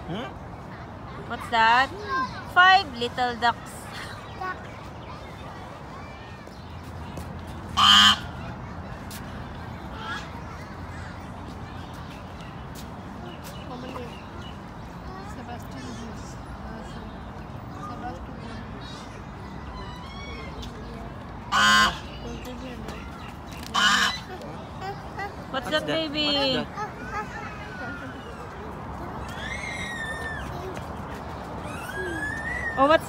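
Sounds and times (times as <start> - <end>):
loud bird call: 7.7 - 8.5
goose honking: 7.8 - 8.2, 21.5 - 22.0, 23.7 - 24.3.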